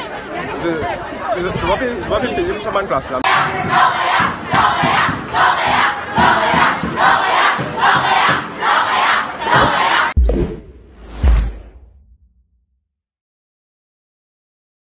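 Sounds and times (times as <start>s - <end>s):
crowd chanting: 3.2s - 10.2s.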